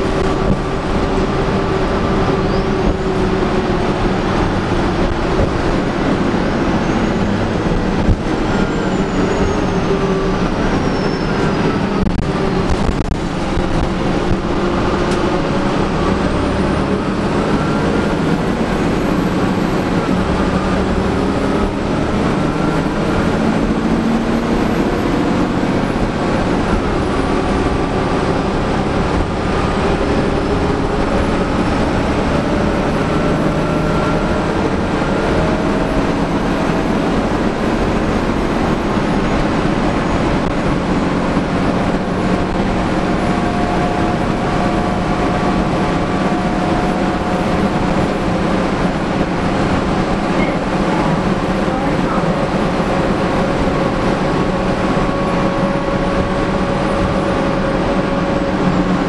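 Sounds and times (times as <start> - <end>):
bus engine and road noise: 0.0 - 59.0.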